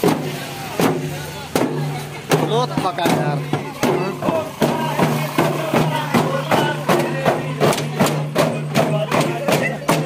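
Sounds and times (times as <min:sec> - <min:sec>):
folk drums beating: 0:00.0 - 0:10.0
voices: 0:00.0 - 0:10.0.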